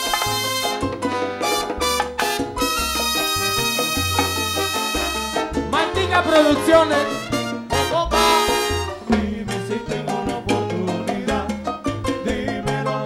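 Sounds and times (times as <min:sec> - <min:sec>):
horns: 0:00.0 - 0:09.2
bass: 0:00.0 - 0:13.0
latin percussion: 0:00.0 - 0:13.0.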